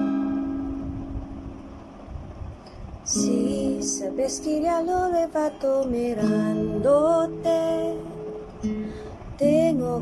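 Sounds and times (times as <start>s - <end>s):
guitar chord ringing: 0.0s - 10.0s.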